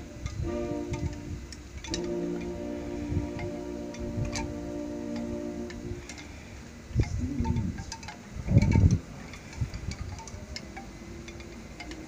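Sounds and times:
low rumbling bursts: 0.0 - 11.9.

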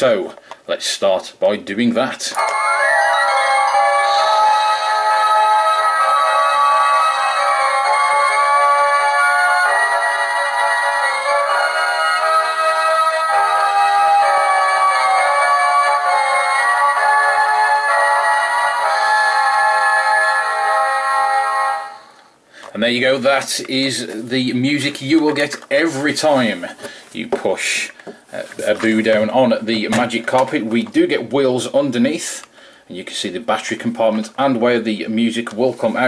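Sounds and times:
electronic toy tune: 2.4 - 22.0.

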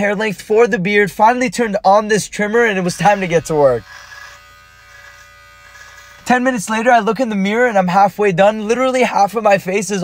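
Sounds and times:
electric beard trimmer running: 2.7 - 6.6.

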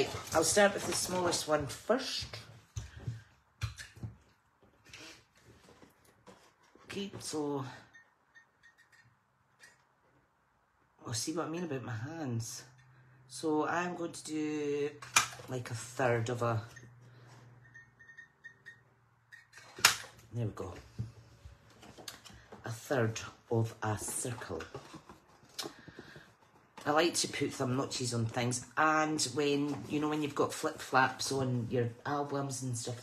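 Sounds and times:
plastic handling and rustling: 0.0 - 7.4, 19.6 - 33.0.

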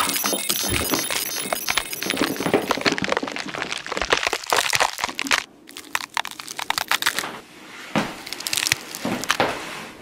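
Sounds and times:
rubber costume crackling and rustling: 1.6 - 7.4, 8.2 - 9.7.

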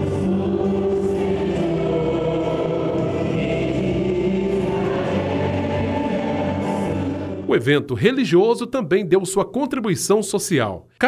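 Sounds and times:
vocal quartet singing gospel: 0.0 - 8.5.

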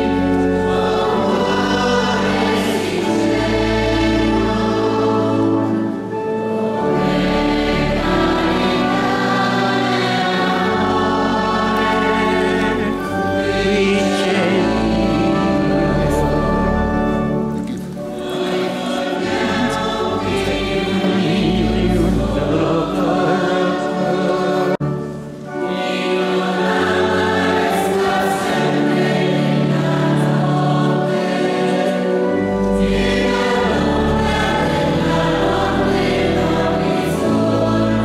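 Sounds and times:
choir singing a hymn: 0.0 - 38.0.

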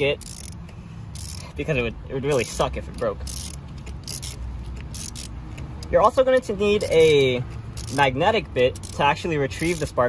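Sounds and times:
ratchet wrench clicking: 0.0 - 10.0.

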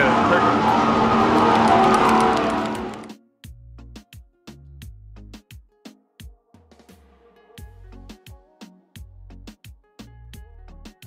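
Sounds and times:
electric go-karts motor hum: 0.0 - 3.1.

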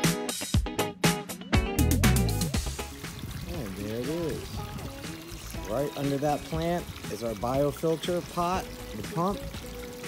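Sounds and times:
waterfall pouring over rocks: 2.4 - 10.0.

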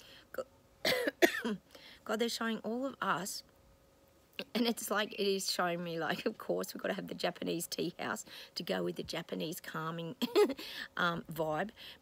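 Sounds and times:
woman clearing her throat: 0.8 - 1.6.

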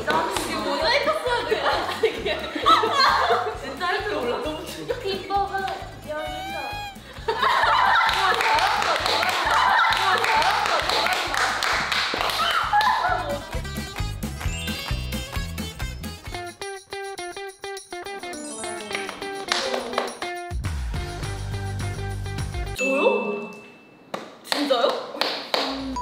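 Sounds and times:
upbeat music with bass beat: 0.0 - 22.8
women laughing: 0.6 - 4.3, 6.4 - 11.1, 12.4 - 13.6.

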